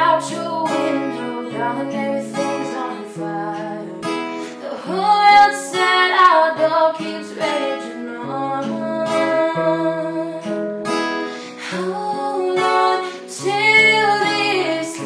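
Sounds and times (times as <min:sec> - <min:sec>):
acoustic guitar: 0:00.0 - 0:15.0
woman singing: 0:00.0 - 0:15.0.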